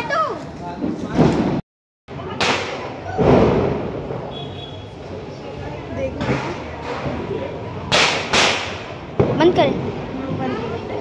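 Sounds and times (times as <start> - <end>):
firecracker bang: 0.8 - 1.6, 2.2 - 4.9, 6.2 - 10.7
firecracker thud: 0.8 - 1.6, 2.3 - 4.8, 6.2 - 10.5.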